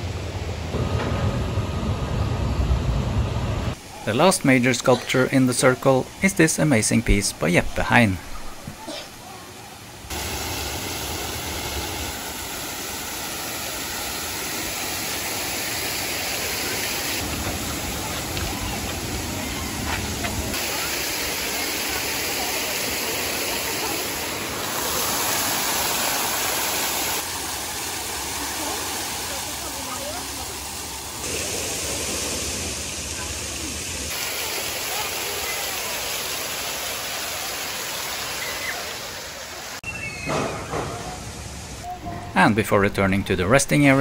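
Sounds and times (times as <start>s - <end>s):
river water rushing: 9.9s - 39.9s.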